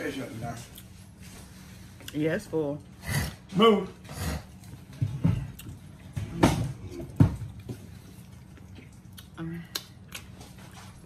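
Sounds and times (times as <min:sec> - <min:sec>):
chewing noises: 0:02.8 - 0:06.2, 0:06.8 - 0:11.0.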